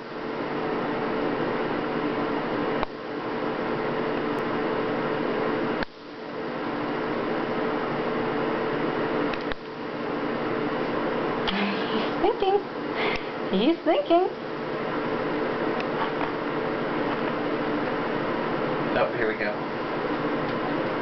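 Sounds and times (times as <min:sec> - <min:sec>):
mechanical hum with hiss: 0:00.0 - 0:21.0.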